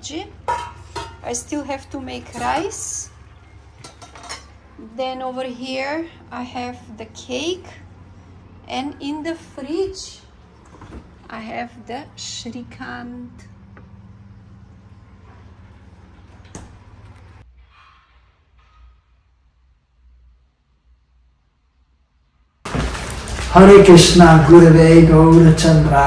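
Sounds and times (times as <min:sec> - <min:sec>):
low steady hum: 0:00.0 - 0:17.4
clinks of cookware and utensils: 0:00.4 - 0:01.4, 0:02.2 - 0:03.0, 0:03.7 - 0:04.6.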